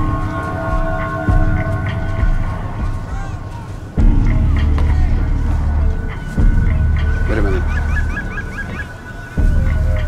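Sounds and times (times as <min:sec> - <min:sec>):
low background music: 0:00.0 - 0:10.0.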